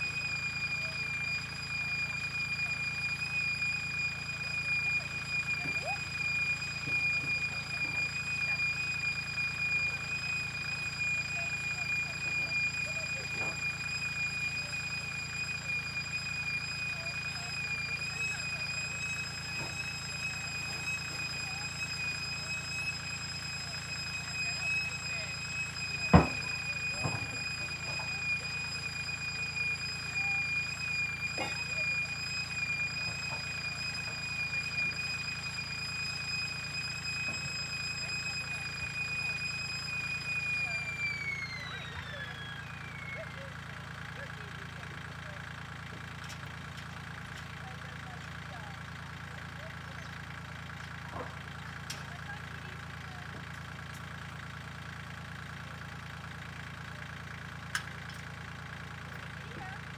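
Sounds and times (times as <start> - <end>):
high-pitched whine: 0.0 - 43.5
tractor engine rumbling: 0.0 - 59.9.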